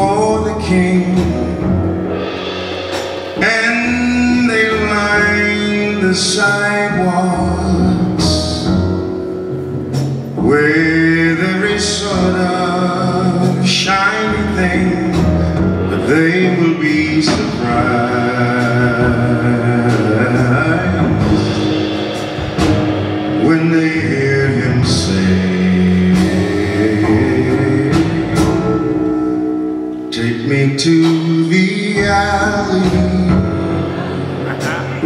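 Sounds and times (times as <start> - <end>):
man singing jazz: 0.0 - 2.3, 3.2 - 35.0
jazz band with upright bass: 0.0 - 35.0.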